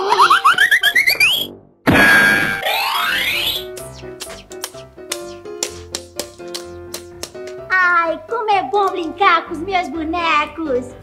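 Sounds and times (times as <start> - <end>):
bouncy children's music: 0.0 - 1.5, 3.0 - 11.0.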